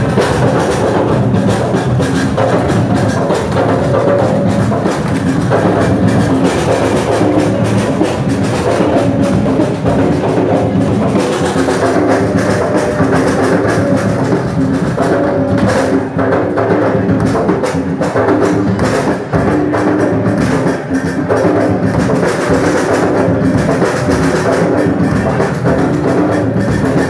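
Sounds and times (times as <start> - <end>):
loud drums and percussion: 0.0 - 27.0.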